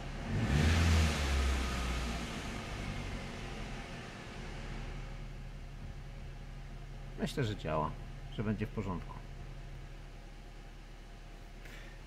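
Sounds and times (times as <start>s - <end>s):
car engine idling and revving: 0.0s - 12.0s.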